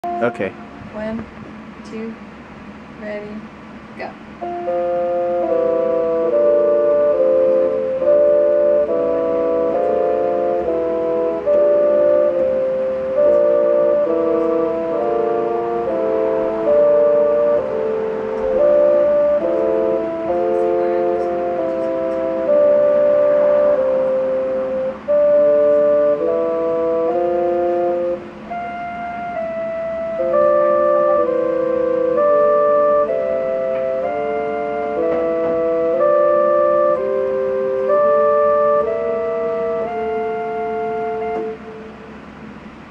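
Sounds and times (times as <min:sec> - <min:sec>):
electronic keyboard bassoon duet: 0:00.0 - 0:42.9.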